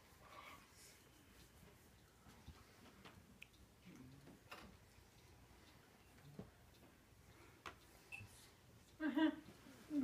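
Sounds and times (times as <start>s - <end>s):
faint irregular clicks: 0.0s - 10.0s.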